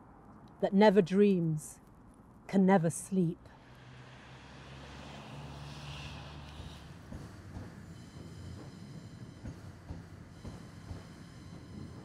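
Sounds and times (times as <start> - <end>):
train rumbling: 3.6 - 12.0.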